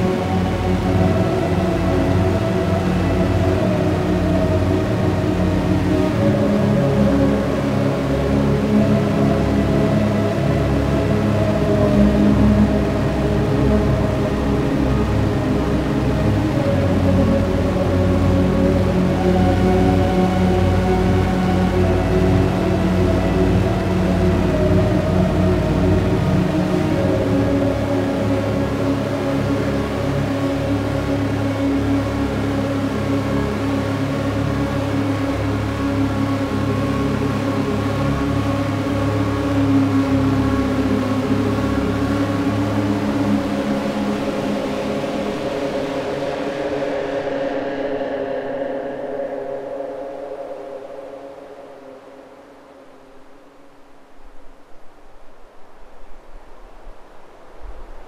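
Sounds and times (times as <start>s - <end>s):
synthesizer drones: 0.0s - 54.2s
faint hissing noise: 0.0s - 58.0s.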